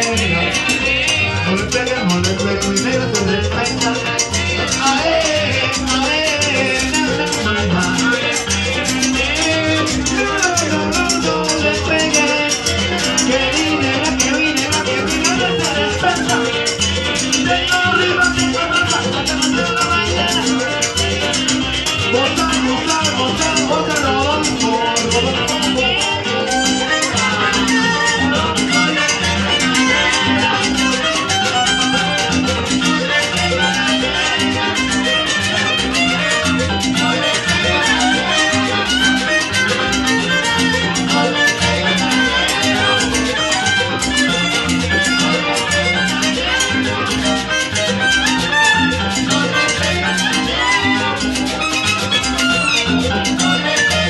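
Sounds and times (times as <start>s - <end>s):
live salsa band playing: 0.0s - 54.0s.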